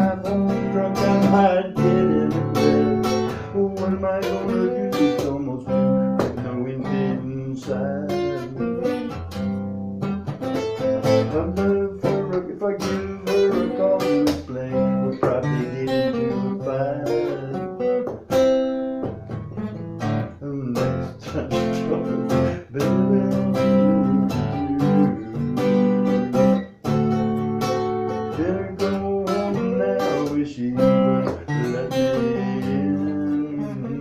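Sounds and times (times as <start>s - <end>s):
acoustic guitar strumming: 0.0s - 34.0s.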